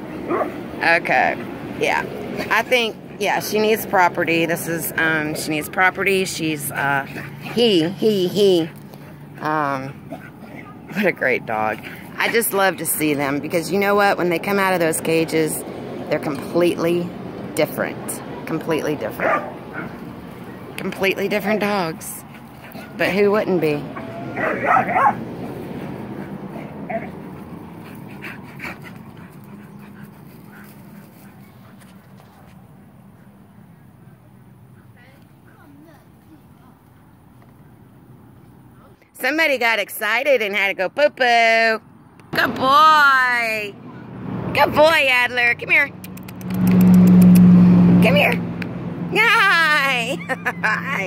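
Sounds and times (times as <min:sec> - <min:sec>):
dogs playing: 0:00.0 - 0:14.1, 0:18.8 - 0:37.8
vehicle engine humming: 0:00.0 - 0:51.0
person laughing: 0:50.0 - 0:51.0.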